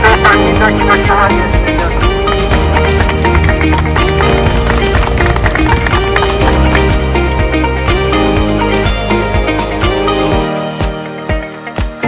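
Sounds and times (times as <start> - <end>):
music with steady beat: 0.0 - 12.0.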